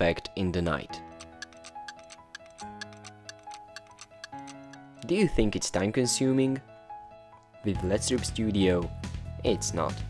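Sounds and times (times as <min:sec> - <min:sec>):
soft music of held chords: 0:00.0 - 0:10.0
clock ticking: 0:01.1 - 0:04.9.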